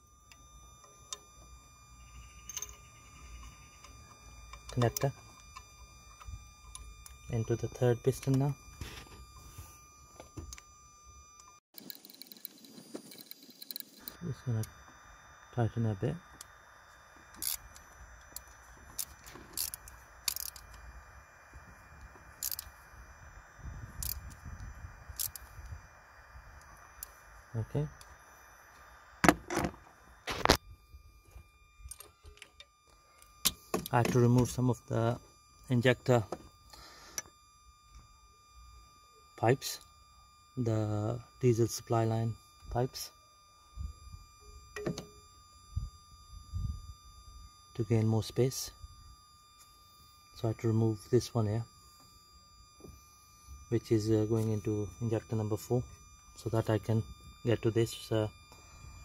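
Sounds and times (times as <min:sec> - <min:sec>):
sharp click with ring: 0:02.4 - 0:03.9, 0:44.8 - 0:45.2
socket ratchet clicking: 0:17.3 - 0:20.8, 0:22.4 - 0:22.7.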